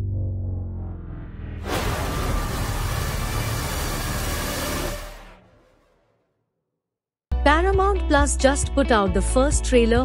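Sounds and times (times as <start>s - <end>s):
deep held bass tones: 0.0s - 5.3s
dense rush of noise: 1.2s - 6.1s.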